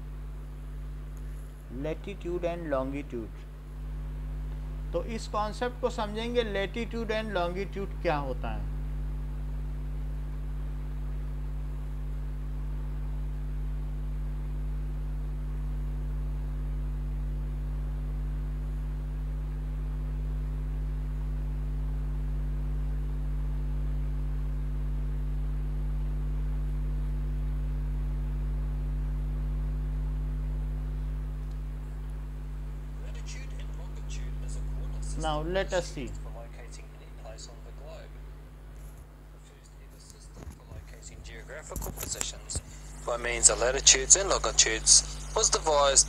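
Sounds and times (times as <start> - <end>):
electrical mains hum: 0.0 - 46.0.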